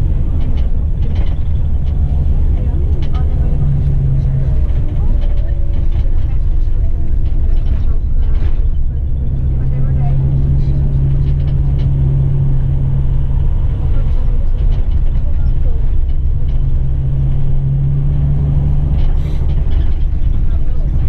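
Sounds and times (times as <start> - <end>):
coach engine hum: 0.0 - 21.0
road noise rumble: 0.0 - 21.0.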